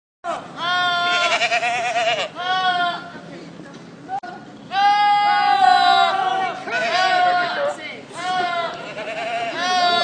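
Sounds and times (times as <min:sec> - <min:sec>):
goat bleating: 0:00.6 - 0:03.1, 0:06.6 - 0:10.0.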